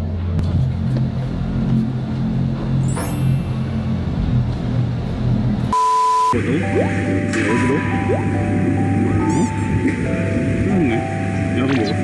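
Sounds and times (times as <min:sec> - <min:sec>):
low background music: 0:00.0 - 0:12.0
high test-tone beep: 0:05.7 - 0:10.1, 0:11.1 - 0:12.0.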